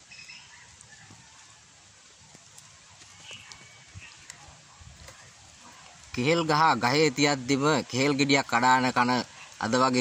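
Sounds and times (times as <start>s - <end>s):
faint high chirps: 0.0s - 1.6s
outdoor background hiss: 0.0s - 10.0s.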